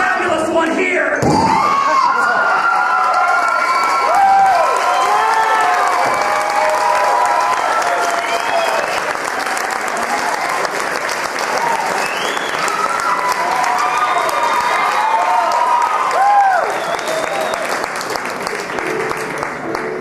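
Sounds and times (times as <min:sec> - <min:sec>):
audience applauding: 0:02.2 - 0:20.0.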